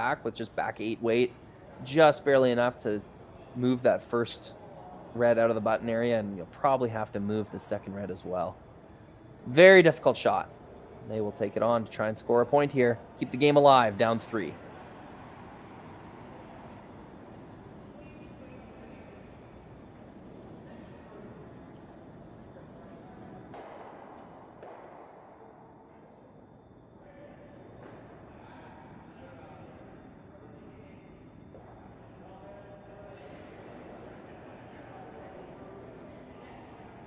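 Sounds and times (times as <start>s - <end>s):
faint distant voices: 0.0s - 23.6s
steady background hum: 0.0s - 37.0s.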